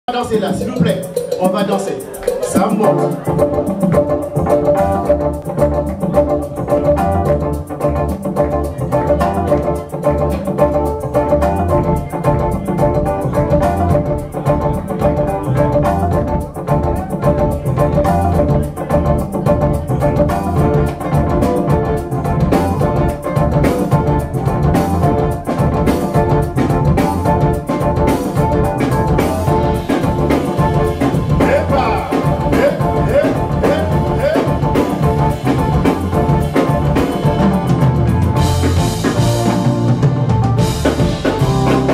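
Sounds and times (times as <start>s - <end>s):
keyboard: 0.0s - 41.9s
drum kit beat: 0.1s - 41.9s
electric bass line: 2.5s - 41.9s.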